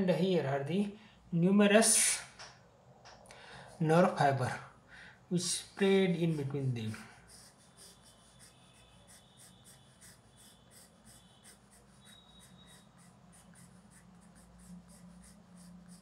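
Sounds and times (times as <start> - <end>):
pencil scratching on paper: 5.4 - 16.0.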